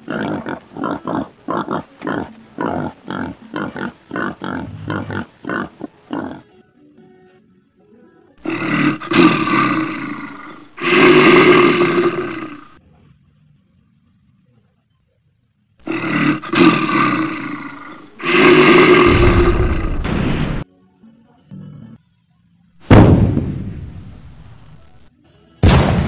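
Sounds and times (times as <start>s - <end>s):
animal roars: 0.0s - 6.4s, 8.4s - 12.8s, 15.8s - 20.2s.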